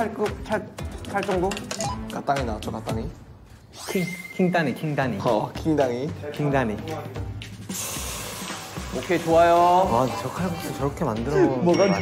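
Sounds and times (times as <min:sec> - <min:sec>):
background music: 0:00.0 - 0:12.0
water sizzling in hot pan: 0:07.7 - 0:10.8.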